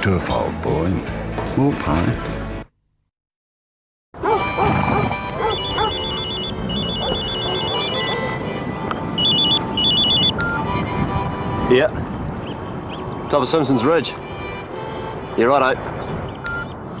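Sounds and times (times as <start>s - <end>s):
background music: 0.0s - 2.7s, 4.2s - 16.6s
mobile phone ringing: 5.4s - 8.4s, 9.2s - 10.6s.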